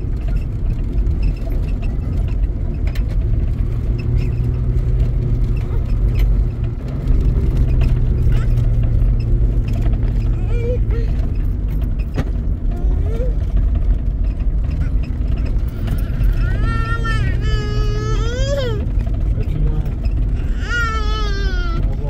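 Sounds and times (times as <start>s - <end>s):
steady low rumble: 0.0s - 22.0s
baby crying: 10.4s - 11.2s, 15.8s - 18.9s, 20.3s - 22.0s.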